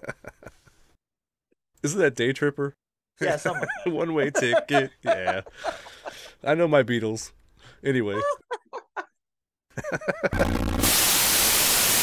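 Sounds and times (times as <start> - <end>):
person laughing: 8.1 - 9.1, 9.8 - 10.6
white-noise static burst: 10.4 - 12.0.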